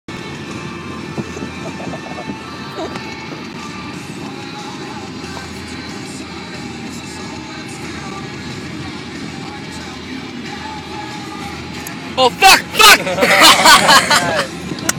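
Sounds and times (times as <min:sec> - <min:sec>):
music playing in car: 0:00.1 - 0:14.9
road noise: 0:00.1 - 0:14.9.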